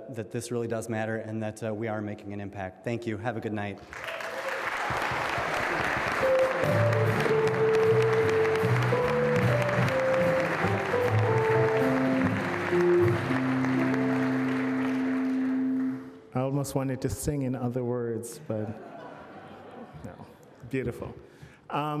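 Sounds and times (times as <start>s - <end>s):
audience applauding: 3.8s - 16.2s
live band playing slow tune: 6.0s - 16.3s.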